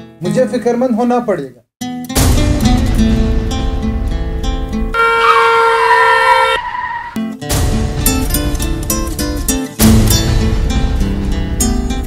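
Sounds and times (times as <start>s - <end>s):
car horn blast: 4.9s - 7.1s.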